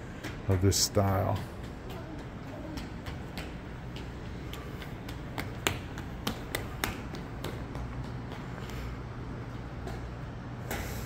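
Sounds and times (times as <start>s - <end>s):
footsteps clicking on concrete: 0.0s - 10.9s
steady low hum: 0.0s - 11.0s.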